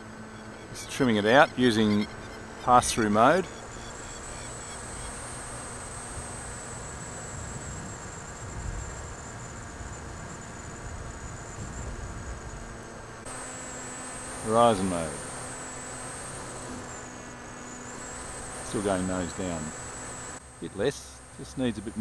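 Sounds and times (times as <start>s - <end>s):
electric motor propeller whine: 0.0s - 22.0s
wind rumble on microphone: 6.1s - 12.9s.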